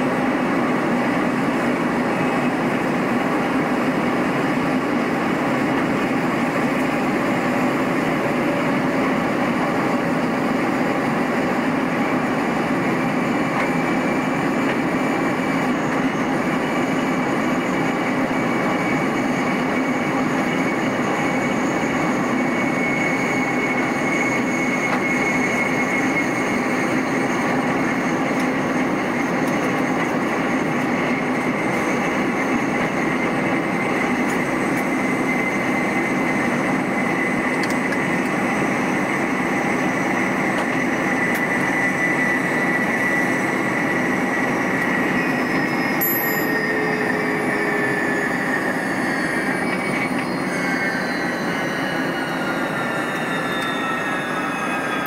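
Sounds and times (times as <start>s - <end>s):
faint high whine: 0.1s - 55.0s.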